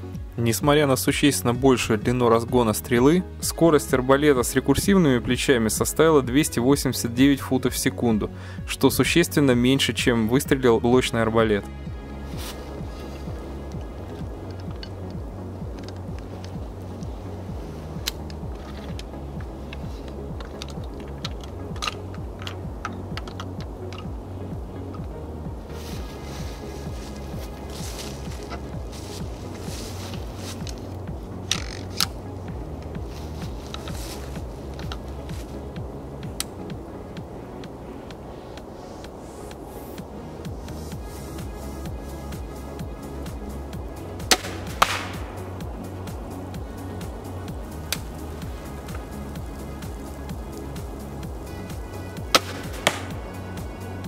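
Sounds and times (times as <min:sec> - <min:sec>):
background music with beat: 0:00.0 - 0:54.0
crossbow shot snaps: 0:44.2 - 0:45.4, 0:52.4 - 0:53.2
arrow striking target: 0:44.3 - 0:45.4, 0:52.3 - 0:53.2.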